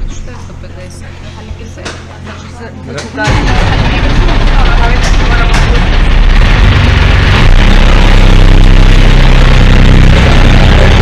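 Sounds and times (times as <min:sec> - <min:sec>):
boat motor running: 0:02.8 - 0:11.0.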